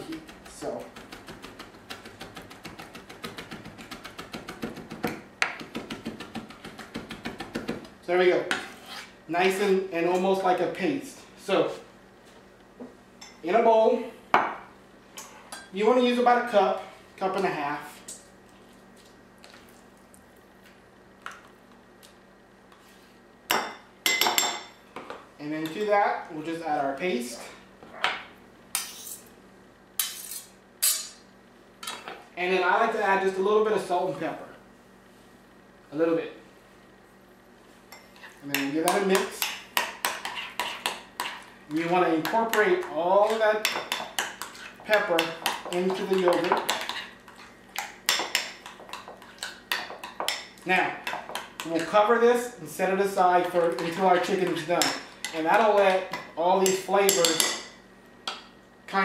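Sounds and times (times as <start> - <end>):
knife scraping metal and glass: 28.8 - 29.2.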